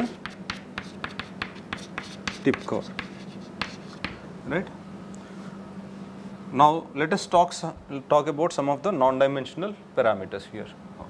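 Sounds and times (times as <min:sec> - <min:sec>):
chalk tapping on chalkboard: 0:00.0 - 0:04.2.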